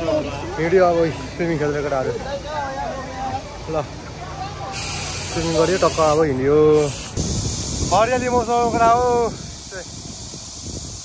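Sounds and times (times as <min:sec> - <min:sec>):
steady high hiss: 0:04.6 - 0:11.0.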